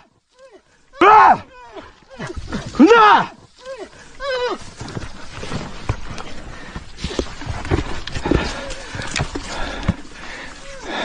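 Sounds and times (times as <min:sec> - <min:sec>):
hands and feet scuffing rock: 0:02.2 - 0:11.0
man grunting breaths: 0:08.3 - 0:11.0.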